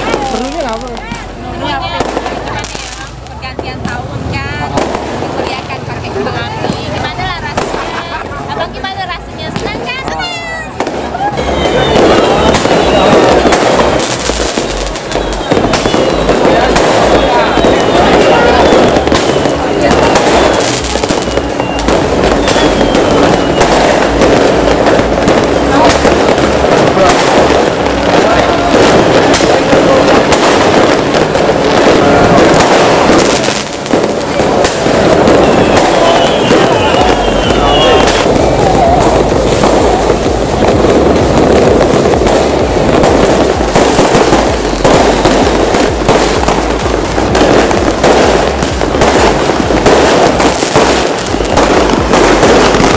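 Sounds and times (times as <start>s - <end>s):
fireworks bangs and crackles: 0.0s - 52.9s.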